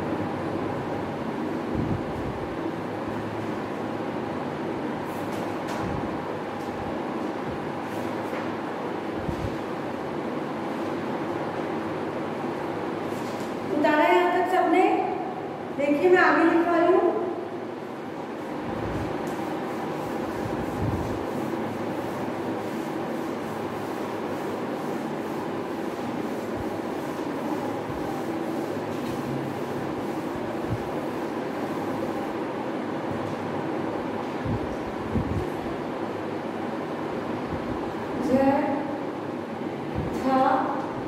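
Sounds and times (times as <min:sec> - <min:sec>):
duster scrubbing chalkboard: 0:18.2 - 0:33.4.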